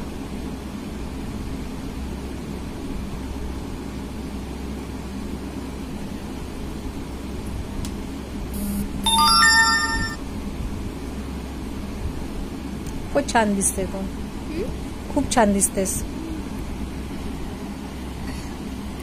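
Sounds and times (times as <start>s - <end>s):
low background hum: 0.0s - 19.0s
electronic jingle: 8.6s - 10.2s.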